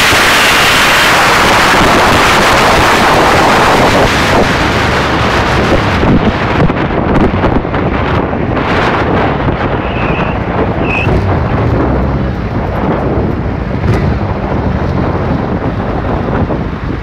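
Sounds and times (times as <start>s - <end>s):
road noise: 0.0s - 17.0s
wind rushing over microphone: 0.0s - 17.0s
short high squeaks: 9.8s - 11.2s.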